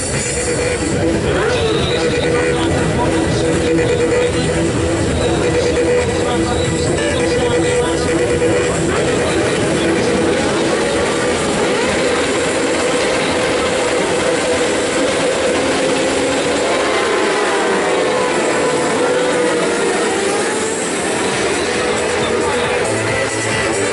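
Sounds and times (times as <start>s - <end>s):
motorcycles accelerating away: 0.0s - 23.9s
motorcycles revving hard: 0.0s - 23.9s.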